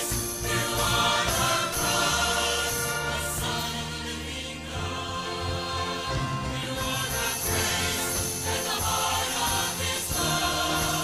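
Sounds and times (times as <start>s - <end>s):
church choir singing in harmony: 0.0s - 11.0s
instrumental accompaniment: 0.0s - 11.0s.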